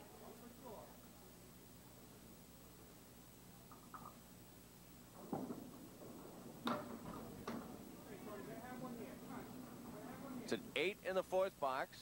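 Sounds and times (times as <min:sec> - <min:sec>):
ball clacking into pins: 0:05.2 - 0:07.8
bowling ball rolling on wooden lane: 0:05.2 - 0:10.5.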